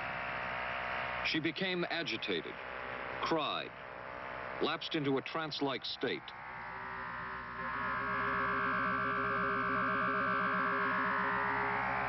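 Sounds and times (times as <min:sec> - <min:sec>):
eerie synthesized tones: 0:06.2 - 0:12.0
warbling low tones: 0:06.3 - 0:12.0.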